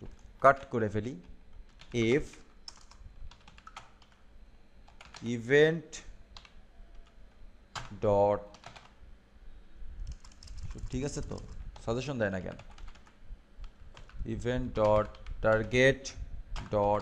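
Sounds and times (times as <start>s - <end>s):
man talking: 0.4s - 1.3s, 1.9s - 2.4s, 5.2s - 6.1s, 7.9s - 8.5s, 10.8s - 12.6s, 14.2s - 17.0s
keyboard typing: 1.7s - 4.2s, 4.9s - 5.3s, 6.3s - 9.0s, 10.0s - 11.9s, 12.6s - 15.9s.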